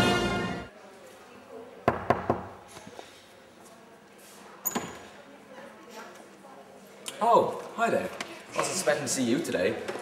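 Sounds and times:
knocks on a door: 1.9s - 2.5s.

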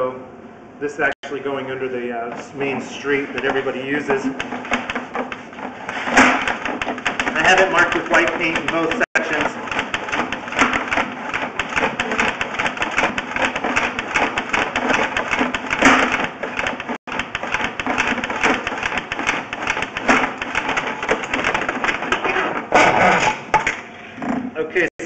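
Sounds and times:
cable winding onto reel: 6.4s - 15.5s.

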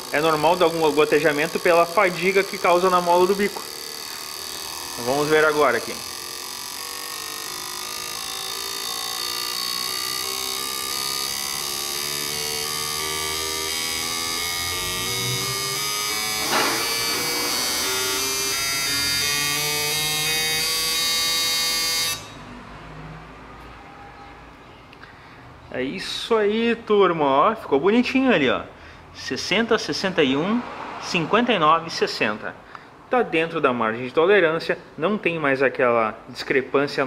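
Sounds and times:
pulsing fuel injectors spraying: 0.0s - 20.6s
electric pump buzz: 0.0s - 23.7s.

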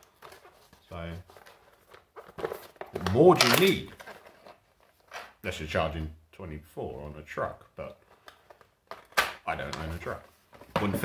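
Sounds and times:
packaging handling clicks and knocks: 1.3s - 5.4s, 8.1s - 11.0s.

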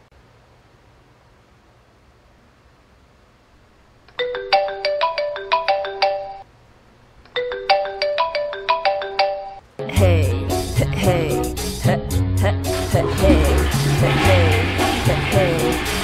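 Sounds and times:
phone alarm melody: 4.2s - 6.4s
loud music with heavy bass beat: 10.7s - 16.0s.

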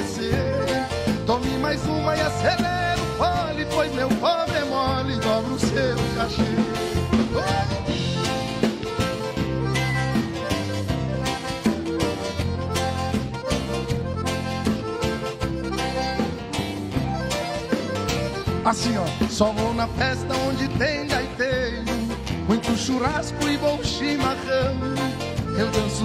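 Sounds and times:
acoustic guitar: 0.0s - 26.0s
drum kit: 0.0s - 26.0s
electric bass: 0.0s - 26.0s
piano accordion: 0.0s - 26.0s.

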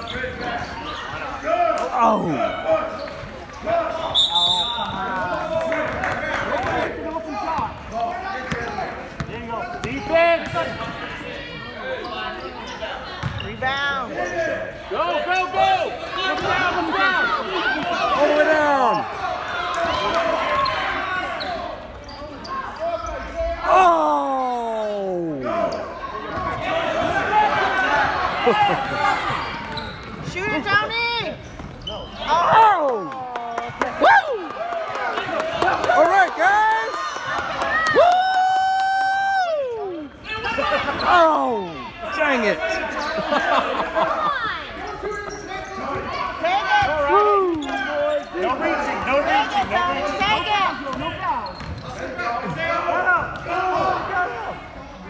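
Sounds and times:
voices and shouts in large hall: 0.0s - 55.0s.

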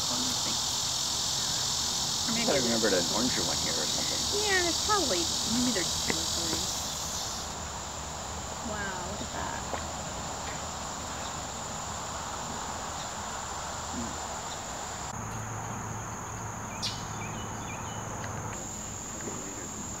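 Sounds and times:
high-pitched insect drone: 0.0s - 20.0s.

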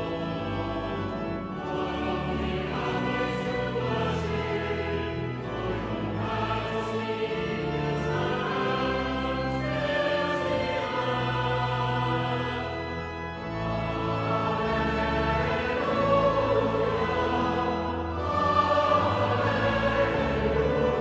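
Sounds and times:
choir singing: 0.0s - 21.0s
low organ notes: 0.0s - 21.0s.

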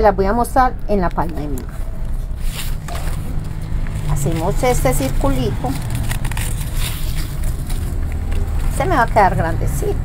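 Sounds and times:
ribbon crinkling and rustling: 1.2s - 9.9s.

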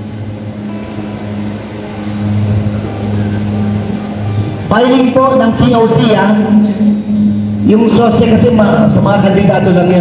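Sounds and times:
low hum: 0.0s - 9.3s
hall noise: 0.0s - 10.0s
man's amplified voice: 4.7s - 10.0s.

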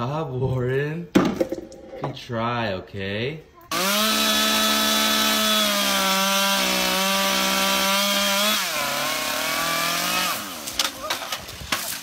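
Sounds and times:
chainsaw running: 3.7s - 11.4s
sharp cracks: 10.3s - 12.0s.

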